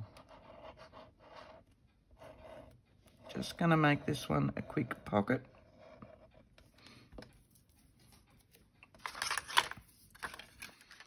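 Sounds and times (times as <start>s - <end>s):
paper rustling and scraping: 7.4s - 11.0s.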